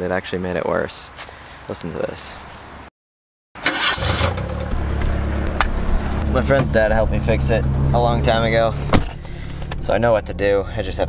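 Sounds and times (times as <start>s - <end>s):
high-pitched squeal: 3.6s - 10.0s
car engine cranking and running: 3.6s - 11.0s.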